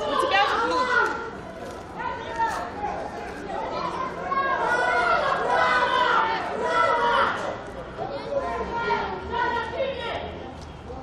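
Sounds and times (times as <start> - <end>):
overlapping voices chattering: 0.0 - 11.0.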